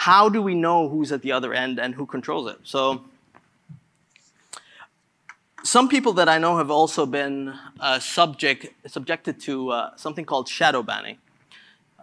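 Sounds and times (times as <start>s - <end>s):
soft mouth clicks: 3.7s - 5.5s
short breath: 4.5s - 5.0s, 11.5s - 11.9s.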